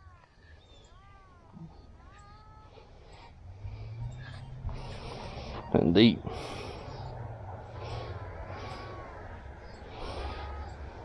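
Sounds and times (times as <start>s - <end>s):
low steady hum: 0.0s - 11.0s
mewing calls: 0.0s - 11.0s.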